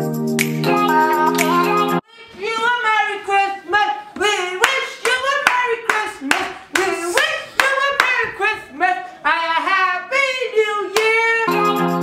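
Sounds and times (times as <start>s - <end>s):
handclaps: 0.4s - 0.7s, 4.6s - 8.4s
person singing: 0.4s - 12.0s.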